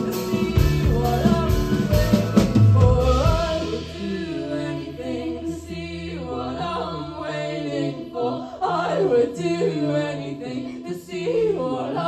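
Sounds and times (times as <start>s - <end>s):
person singing: 0.0s - 5.5s.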